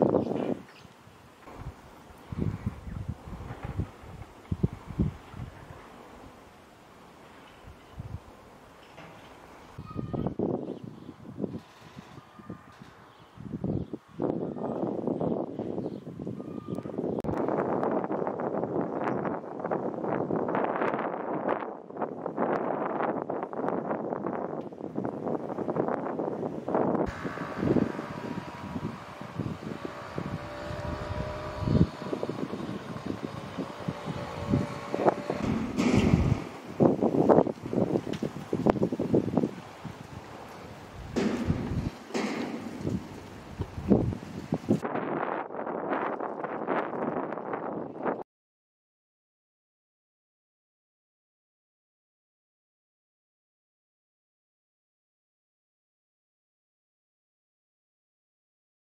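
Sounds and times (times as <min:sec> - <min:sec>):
wind buffeting microphone: 0:00.0 - 0:48.2.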